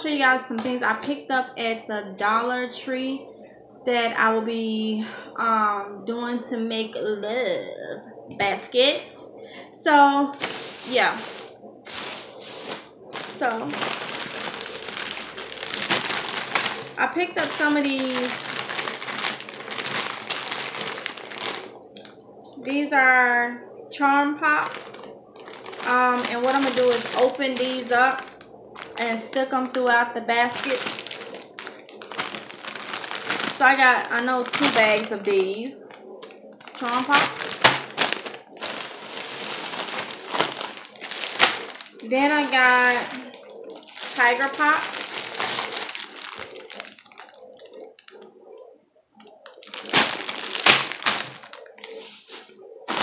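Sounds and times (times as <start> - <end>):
plastic bag crinkling: 10.4 - 22.2, 24.5 - 48.3, 49.2 - 53.0.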